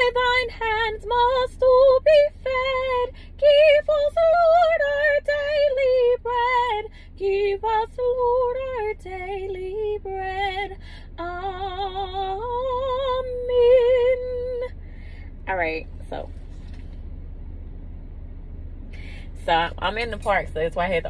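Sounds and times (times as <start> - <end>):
woman singing unaccompanied: 0.0 - 14.7.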